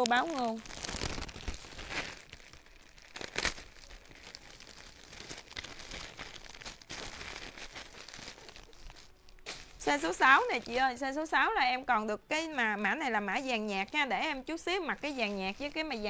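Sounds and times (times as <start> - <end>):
plastic bags crinkling: 0.0 - 16.0.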